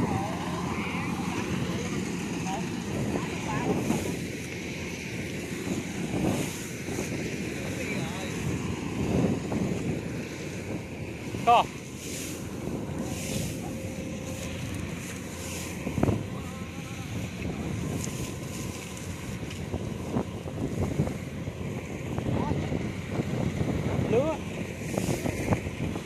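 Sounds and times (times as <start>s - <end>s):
combine harvester engine drone: 0.0s - 26.0s
faint voices: 0.0s - 26.0s
wind on microphone: 0.0s - 26.0s.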